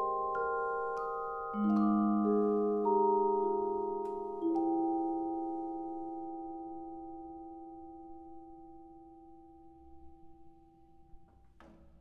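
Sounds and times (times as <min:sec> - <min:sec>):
vibraphone chord ringing: 0:00.0 - 0:08.8.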